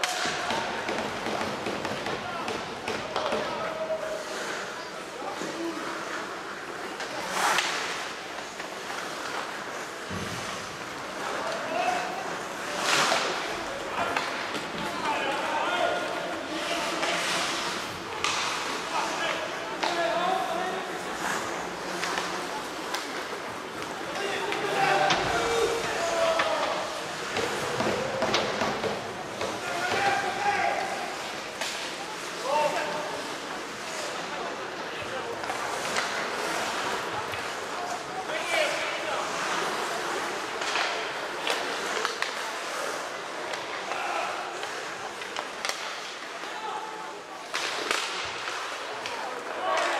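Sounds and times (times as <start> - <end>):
hockey sticks and puck clacking: 0.0 - 49.9.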